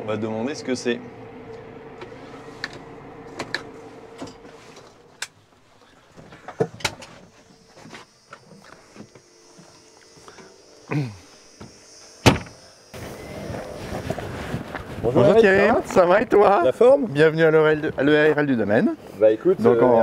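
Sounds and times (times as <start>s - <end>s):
tractor engine hum: 0.0s - 18.1s.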